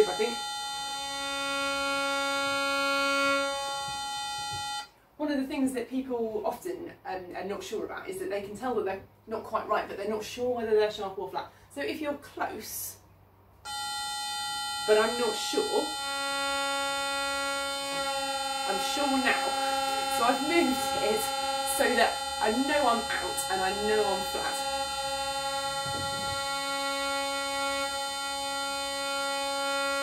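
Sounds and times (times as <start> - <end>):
bowed viol string: 0.0 - 4.9, 13.7 - 30.0
electronic tuner reference tone: 0.0 - 4.9, 13.7 - 30.0.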